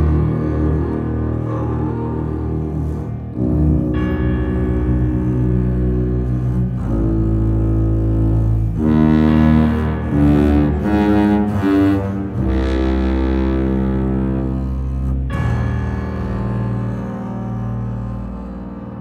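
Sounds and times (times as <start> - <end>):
low sustained brass and strings: 0.0 - 19.0.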